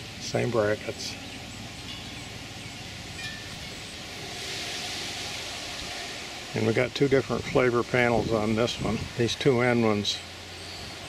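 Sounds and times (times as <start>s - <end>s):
steady outdoor hiss: 0.0s - 11.0s.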